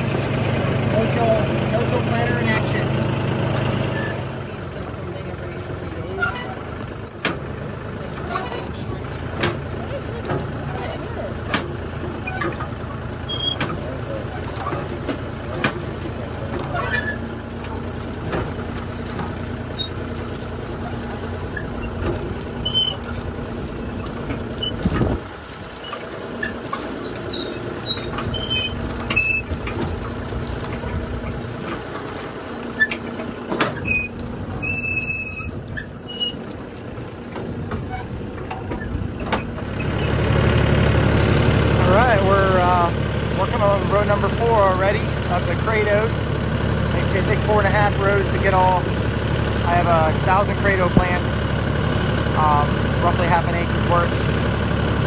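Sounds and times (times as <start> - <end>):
tractor engine running: 0.0 - 55.0.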